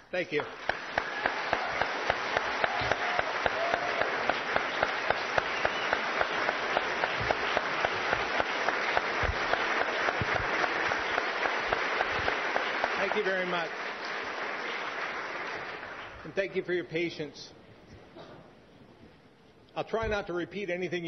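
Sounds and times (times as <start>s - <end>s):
sharp nearby hand claps: 0.4s - 13.2s
audience applause: 0.4s - 16.3s.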